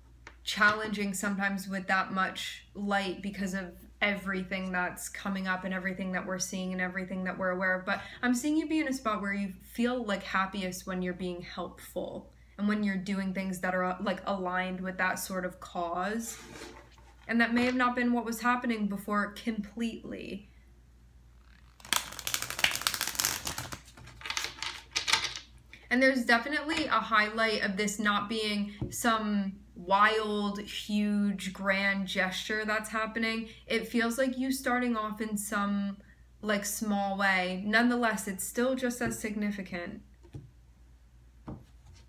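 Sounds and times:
cards being shuffled: 0:21.4 - 0:25.5.

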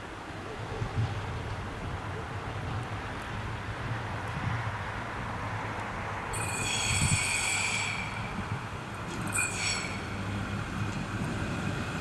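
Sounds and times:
railcar running: 0:00.0 - 0:12.0
train wheels squealing: 0:06.3 - 0:08.6, 0:09.2 - 0:10.3.

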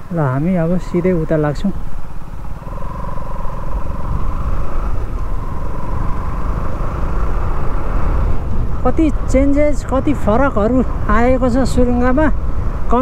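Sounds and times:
motorcycle engine running: 0:00.0 - 0:09.6
faint steady tones: 0:00.0 - 0:13.0
wind on microphone: 0:00.0 - 0:13.0.

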